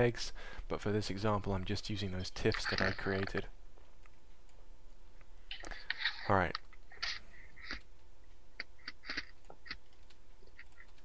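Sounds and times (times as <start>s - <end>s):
faint electrical hum: 0.0s - 11.0s.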